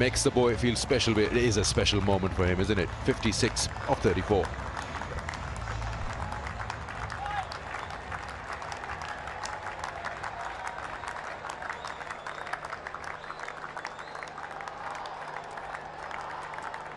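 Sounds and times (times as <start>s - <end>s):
crowd applauding: 0.0s - 16.9s.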